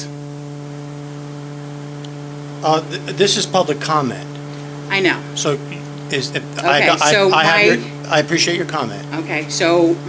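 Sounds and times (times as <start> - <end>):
steady electrical hum: 0.0 - 10.0
even hiss: 2.6 - 10.0.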